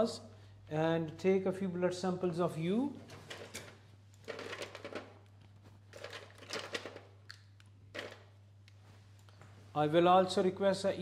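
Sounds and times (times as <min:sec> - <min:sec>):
low electrical hum: 0:00.0 - 0:11.0
packaging rustling: 0:04.2 - 0:07.1.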